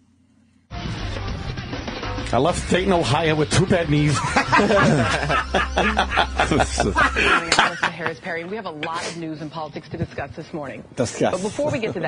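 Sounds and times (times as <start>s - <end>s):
men speaking: 2.3s - 9.4s, 10.7s - 12.0s
low steady hum: 3.7s - 12.0s
men snickering and chuckling: 4.1s - 8.2s.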